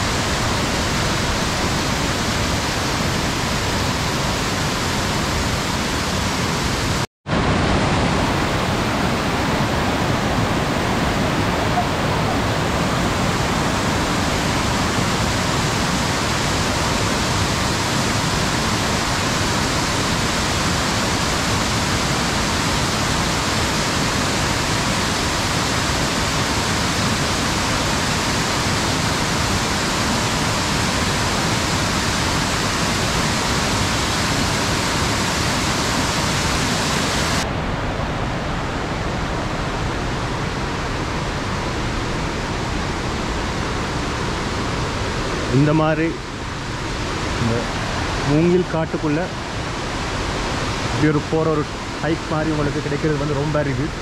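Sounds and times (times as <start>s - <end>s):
waterfall roaring: 0.0s - 54.0s.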